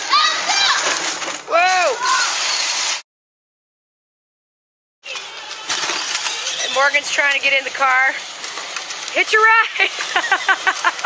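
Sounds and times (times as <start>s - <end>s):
outdoor background hiss: 7.4s - 11.0s.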